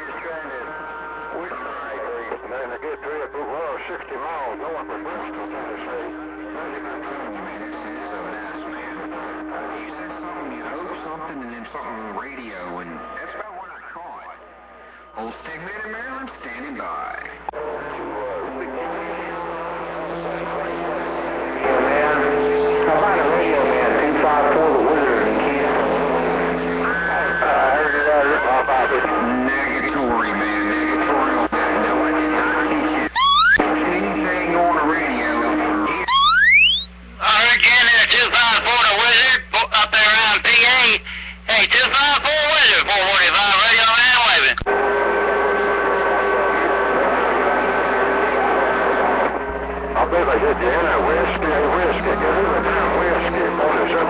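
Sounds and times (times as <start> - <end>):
garbled radio voices: 0.0 - 54.0
radio heterodyne whistles: 33.1 - 33.6, 35.3 - 37.1.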